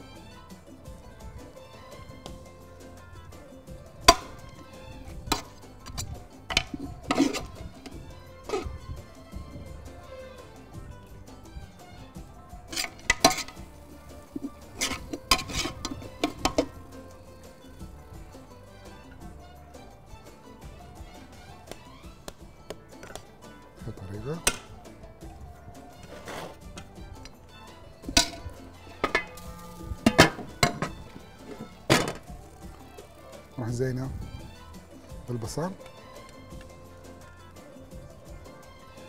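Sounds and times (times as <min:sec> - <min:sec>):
background music: 0:00.0 - 0:39.0
metal spoon clinking on pot: 0:05.3 - 0:07.9, 0:12.7 - 0:13.6, 0:14.3 - 0:17.2, 0:28.1 - 0:32.2.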